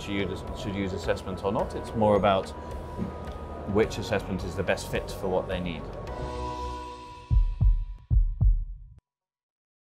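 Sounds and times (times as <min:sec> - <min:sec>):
background music: 0:00.0 - 0:09.0
deep bass thumps: 0:07.3 - 0:08.9.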